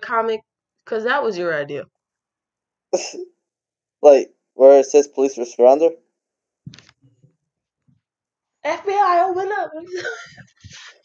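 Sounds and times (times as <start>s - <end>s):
person coughing: 3.0s - 3.2s.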